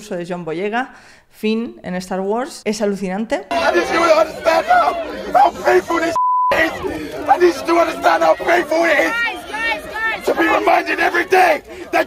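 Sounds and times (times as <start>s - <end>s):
man shouting through megaphone: 3.5s - 12.0s
censor beep: 6.2s - 6.6s.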